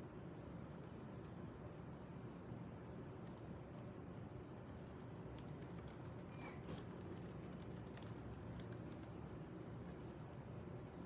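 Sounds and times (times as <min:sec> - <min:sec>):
low room hum: 0:00.0 - 0:11.0
computer keyboard typing: 0:03.2 - 0:03.5, 0:04.5 - 0:09.2, 0:09.9 - 0:10.4.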